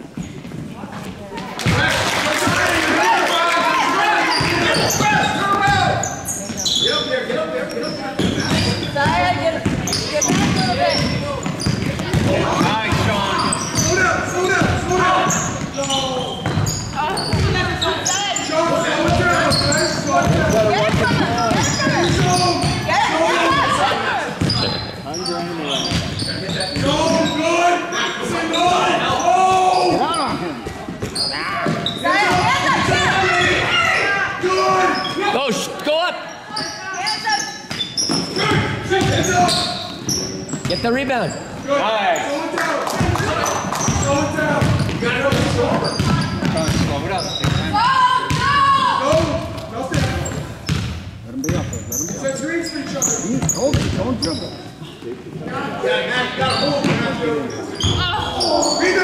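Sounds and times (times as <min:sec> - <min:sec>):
basketball bouncing on court: 0:08.2 - 0:15.8, 0:16.4 - 0:17.8, 0:19.0 - 0:23.0, 0:37.7 - 0:39.7, 0:43.0 - 0:51.8, 0:53.4 - 0:54.2.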